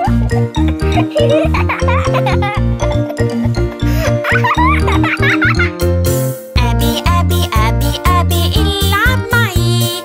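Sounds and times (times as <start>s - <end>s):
cartoon baby giggling: 0.0s - 5.8s
background music with bass line: 0.0s - 10.0s.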